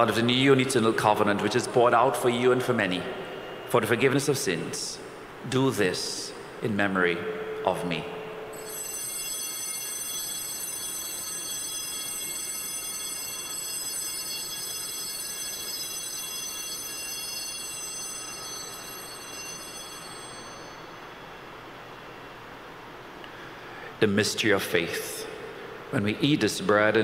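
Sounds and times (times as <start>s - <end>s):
altar bells ringing: 7.2s - 22.0s.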